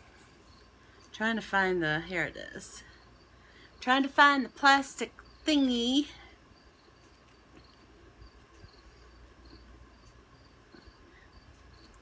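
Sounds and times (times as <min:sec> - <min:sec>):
cricket chirping: 0:00.1 - 0:01.1, 0:05.0 - 0:05.6, 0:06.2 - 0:12.0.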